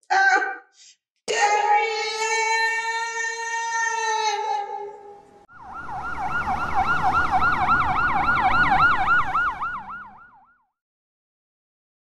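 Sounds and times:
vehicle rumble on road: 5.5 - 10.2
ambulance siren yelping: 5.5 - 10.6.

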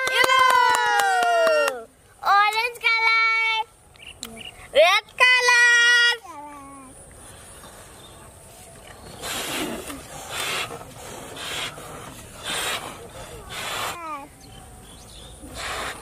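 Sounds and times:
breath puffs inflating balloons: 7.1 - 14.3, 15.4 - 16.0.

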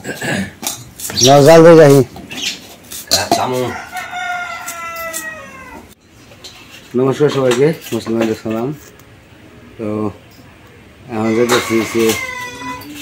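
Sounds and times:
rooster crowing: 3.6 - 6.0, 11.1 - 13.0.

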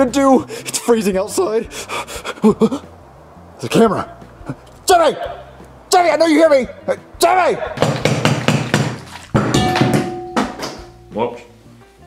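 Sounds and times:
plastic cup banging on wooden table: 7.8 - 10.9.

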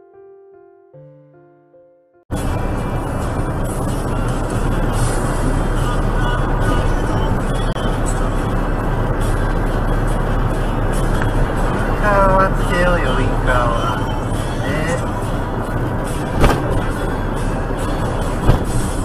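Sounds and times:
vehicle road and engine noise: 2.3 - 19.0.

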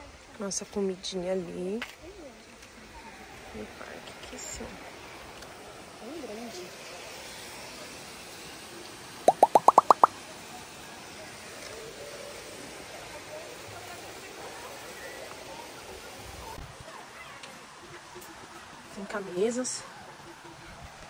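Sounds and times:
upward-sliding tones: 9.3 - 10.1.

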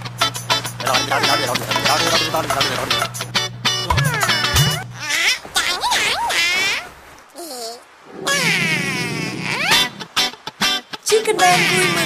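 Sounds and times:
cartoon chick high-pitched cry: 5.0 - 9.9, 11.4 - 12.0.

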